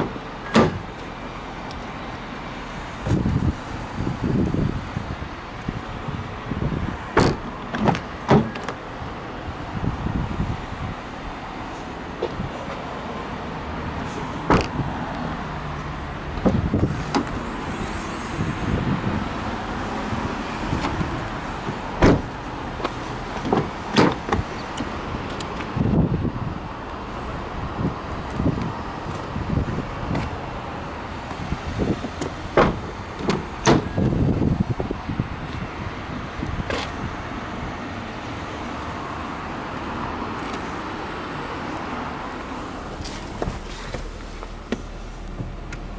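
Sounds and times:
car door thud: 0:00.0 - 0:00.9, 0:07.1 - 0:08.8, 0:14.4 - 0:14.8, 0:16.4 - 0:17.4, 0:20.8 - 0:25.0, 0:31.3 - 0:34.2
car door handling noise: 0:00.0 - 0:01.1, 0:03.0 - 0:03.5, 0:05.6 - 0:08.8, 0:12.1 - 0:12.9, 0:14.0 - 0:15.0, 0:16.3 - 0:17.5, 0:20.6 - 0:26.1, 0:28.0 - 0:30.4, 0:31.1 - 0:35.7, 0:36.5 - 0:37.1, 0:42.4 - 0:45.9
outdoor background noise: 0:00.0 - 0:45.9.

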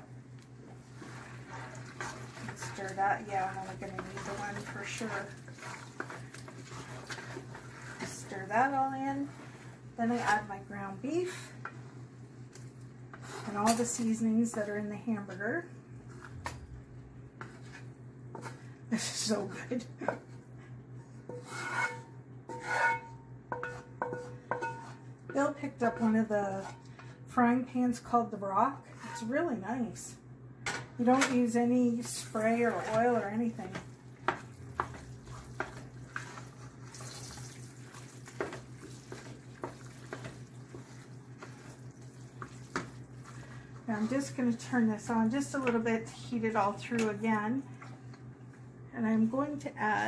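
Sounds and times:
spoon stirring thick wet mix: 0:00.6 - 0:10.6, 0:32.0 - 0:46.4
spatula scraping frying pan: 0:00.8 - 0:10.6, 0:21.3 - 0:25.4, 0:28.9 - 0:29.4, 0:32.0 - 0:46.2
spatula tapping ringing pan: 0:22.8 - 0:25.0.

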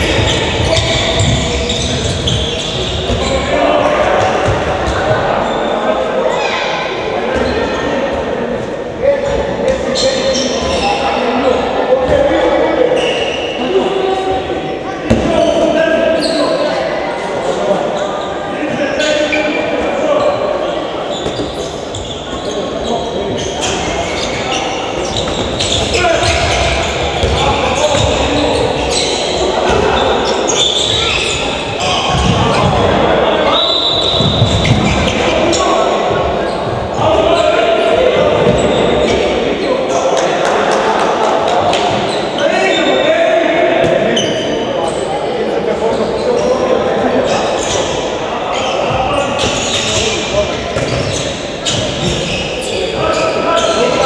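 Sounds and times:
indistinct voices: 0:00.0 - 0:54.0
ball bouncing on wooden court: 0:50.8 - 0:52.2.

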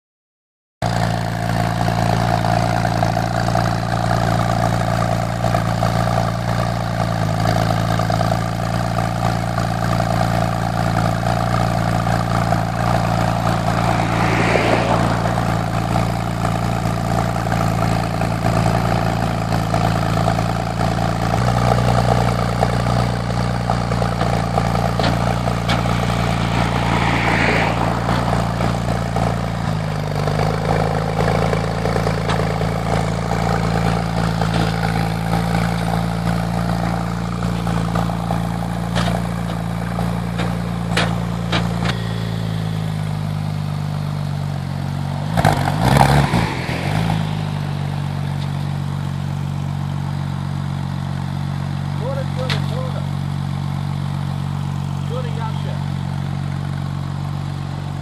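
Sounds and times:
car engine idling: 0:00.8 - 0:58.0.

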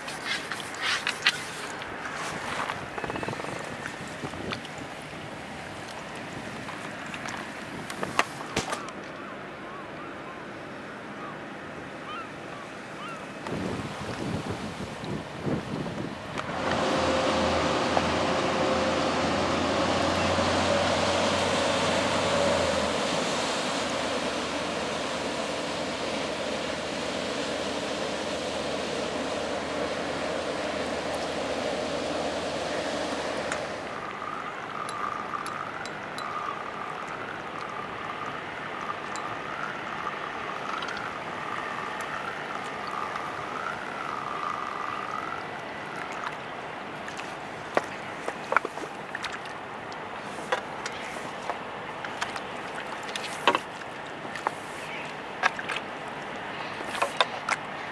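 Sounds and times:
river water: 0:00.0 - 0:57.9
wind: 0:00.0 - 0:57.9
low steady engine drone: 0:16.1 - 0:57.9
faint wavering whine: 0:23.9 - 0:46.3.

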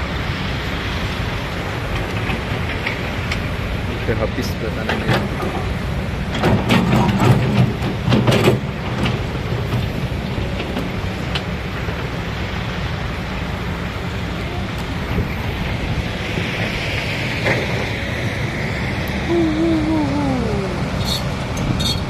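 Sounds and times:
engine humming: 0:00.0 - 0:22.0.

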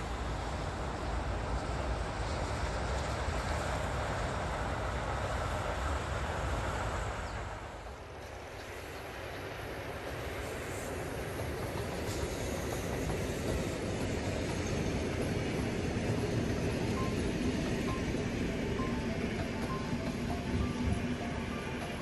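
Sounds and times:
train wheels rumbling on rails: 0:00.0 - 0:22.0
faint music: 0:16.2 - 0:22.0.

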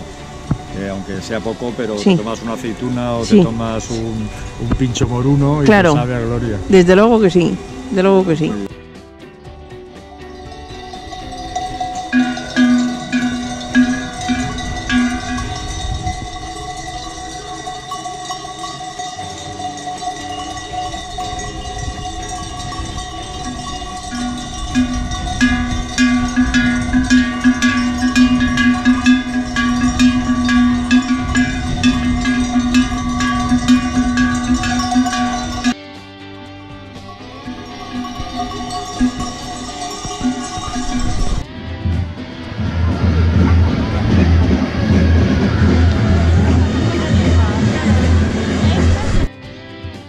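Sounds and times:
livestock bells clanking: 0:00.0 - 0:08.7, 0:10.1 - 0:35.8, 0:37.0 - 0:41.5, 0:43.4 - 0:49.3
wind rumbling on microphone: 0:10.8 - 0:17.8, 0:20.5 - 0:35.8, 0:37.7 - 0:49.3.

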